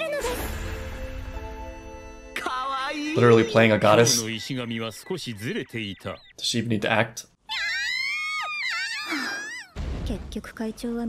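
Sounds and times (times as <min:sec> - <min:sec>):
high-pitched excited cries: 0:07.4 - 0:09.8.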